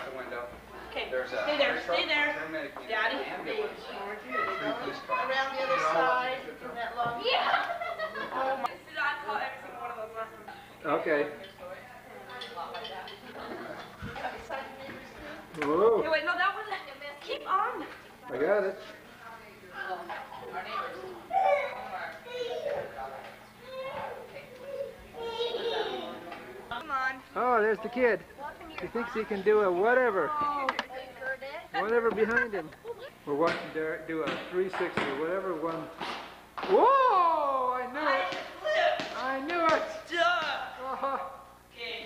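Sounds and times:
voices talking and calling out: 0.0 - 34.9
indistinct chatter with children: 0.6 - 32.1
basketball thumps: 33.4 - 36.8.

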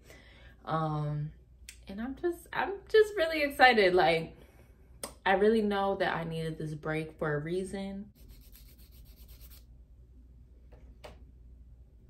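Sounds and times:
gritty rubbing or scraping: 8.2 - 9.6.

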